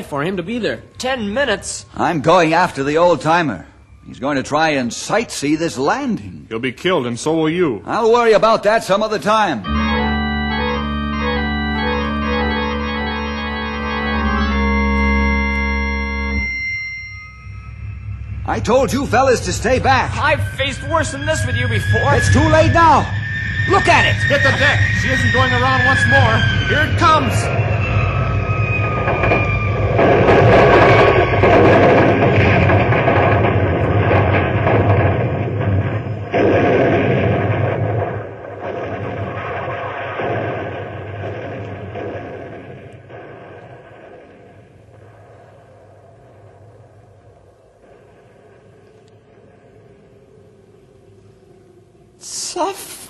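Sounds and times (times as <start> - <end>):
falling whistle: 9.6 - 32.8
low steady drone: 9.6 - 36.4.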